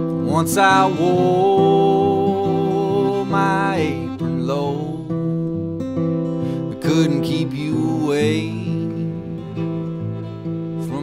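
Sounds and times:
man singing: 0.0s - 5.3s, 6.5s - 9.6s, 10.8s - 11.0s
acoustic guitar: 0.0s - 11.0s.

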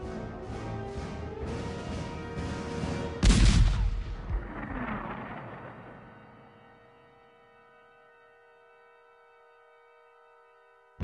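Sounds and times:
background music: 0.0s - 11.0s
cannon firing boom: 3.2s - 6.7s.

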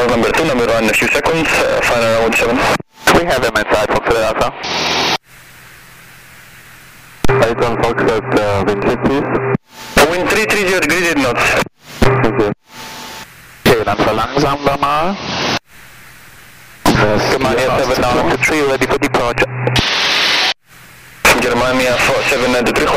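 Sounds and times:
radio voice transmissions: 0.0s - 5.2s, 7.2s - 15.6s, 16.9s - 20.5s, 21.2s - 22.9s
low radio hiss: 0.0s - 22.9s.

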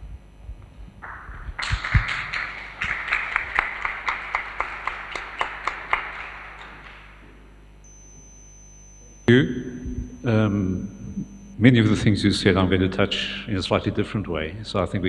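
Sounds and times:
small audience applauding: 1.0s - 7.2s.

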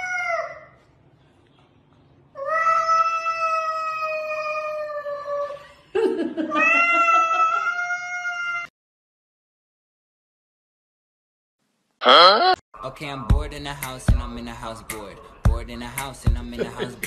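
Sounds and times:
cat yowling: 6.5s - 8.7s.

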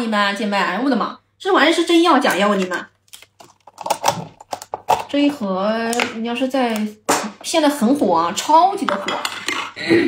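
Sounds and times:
plastic packaging crackling: 2.4s - 5.1s.

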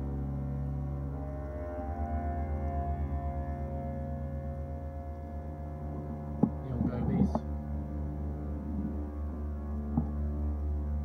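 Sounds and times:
ambient drone music: 0.0s - 11.0s
jumble of noise: 0.0s - 11.0s.

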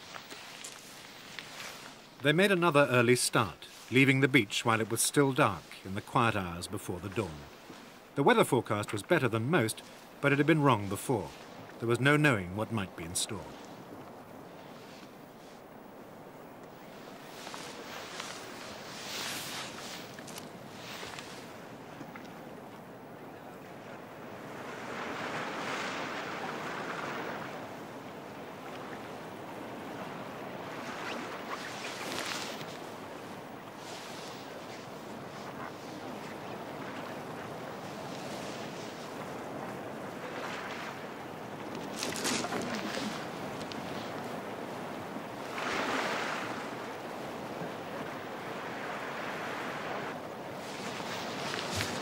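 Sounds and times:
waves washing at shore: 0.0s - 52.0s.

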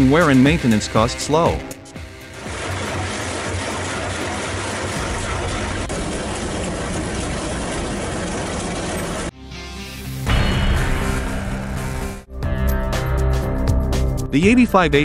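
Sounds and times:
music: 0.0s - 3.3s, 9.3s - 15.0s
drum cutter grinding concrete: 0.0s - 9.3s.

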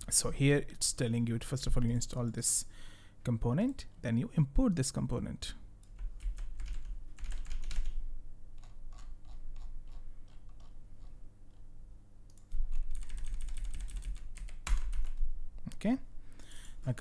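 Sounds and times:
computer keyboard keystrokes: 5.8s - 8.0s, 8.6s - 11.1s, 12.3s - 15.2s.

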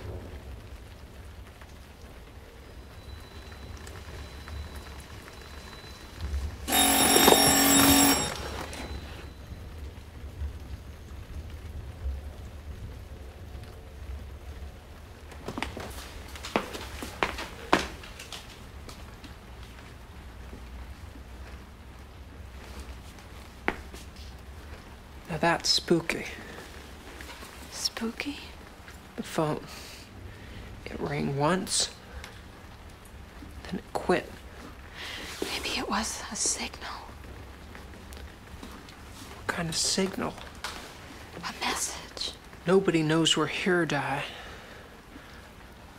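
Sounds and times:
telephone bell ringing: 5.3s - 9.5s.

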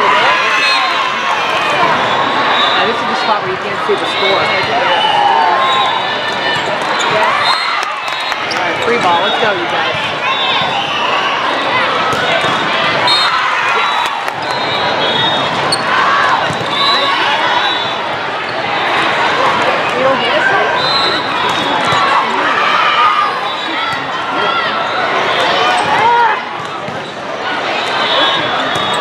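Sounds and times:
volleyball slaps: 12.0s - 13.0s
people shouting and calling out: 14.8s - 26.6s.

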